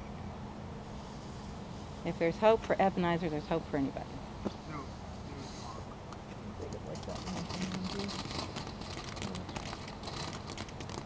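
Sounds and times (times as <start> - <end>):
sparkler crackling and hissing: 7.1 - 11.0.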